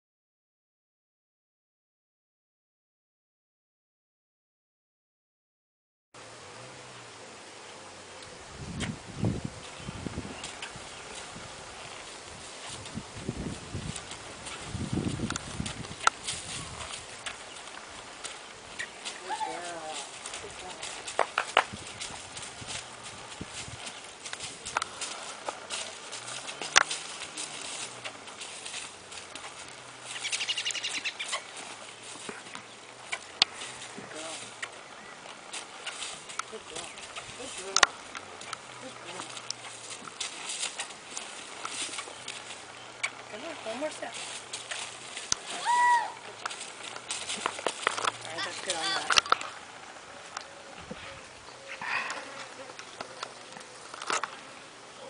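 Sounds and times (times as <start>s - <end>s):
horse hooves on dry grass: 6.5s - 55.0s.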